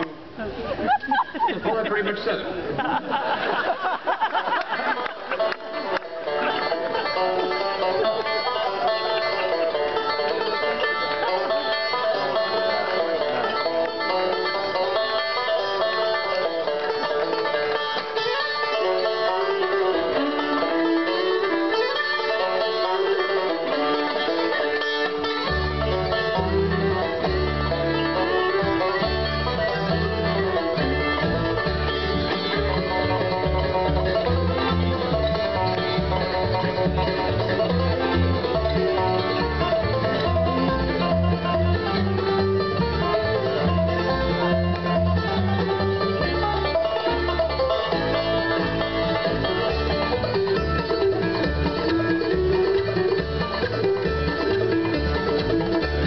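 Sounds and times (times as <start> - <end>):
banjo picking: 0.0 - 56.0
fiddle: 0.0 - 56.0
mandolin: 0.0 - 56.0.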